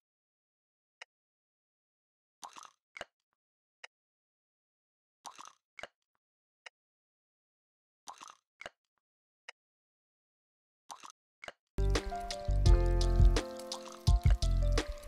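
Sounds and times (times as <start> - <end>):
lo-fi hip-hop drum loop: 11.8 - 15.0.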